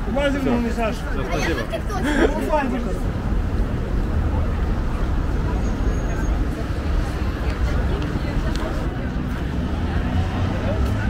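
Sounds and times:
faint background voices: 0:00.0 - 0:11.0
road traffic rumble: 0:00.0 - 0:11.0.

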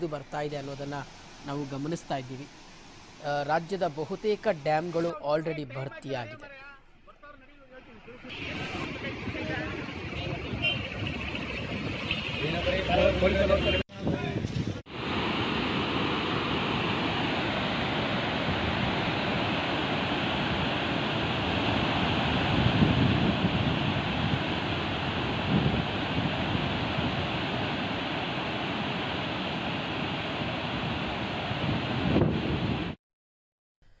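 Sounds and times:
rush of falling water: 0:00.0 - 0:05.2, 0:08.3 - 0:13.8, 0:14.8 - 0:31.7
wind gusts on microphone: 0:08.3 - 0:33.0.

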